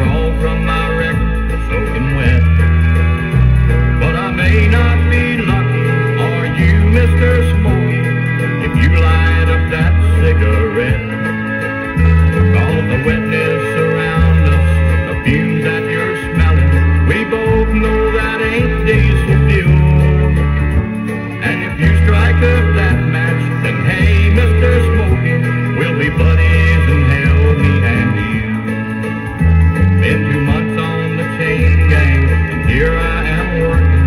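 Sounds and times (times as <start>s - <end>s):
country song from vinyl: 0.0s - 34.0s
strong low bass notes: 0.0s - 34.0s.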